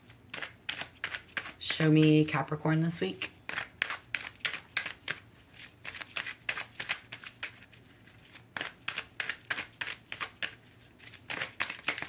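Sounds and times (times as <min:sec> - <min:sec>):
cards being shuffled: 0:00.0 - 0:01.6, 0:03.2 - 0:12.0.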